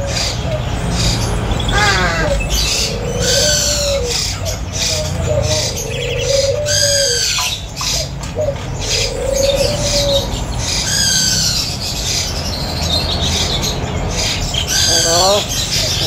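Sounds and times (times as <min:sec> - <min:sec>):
crow calling: 0:00.0 - 0:12.3, 0:14.1 - 0:16.0.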